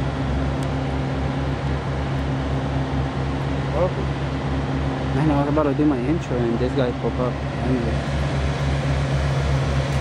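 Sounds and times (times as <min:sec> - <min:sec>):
constant hum: 0:00.0 - 0:10.0
engine idling with throb: 0:00.0 - 0:10.0.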